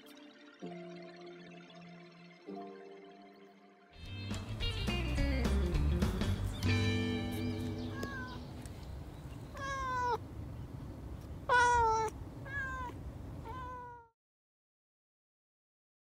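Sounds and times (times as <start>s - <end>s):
held music notes: 0.0s - 8.8s
cat meowing: 7.8s - 8.5s, 9.5s - 10.2s, 11.4s - 14.1s.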